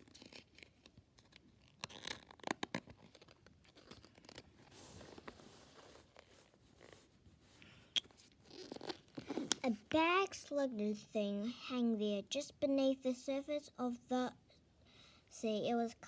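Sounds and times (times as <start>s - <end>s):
paper rustling and crinkling: 0.0s - 7.6s
book pages turning: 0.0s - 9.8s.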